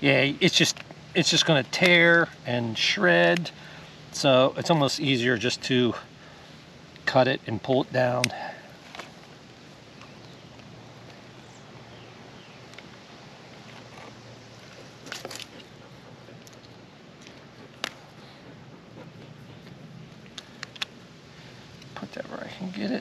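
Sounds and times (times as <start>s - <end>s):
faint steady background noise: 0.0s - 23.0s.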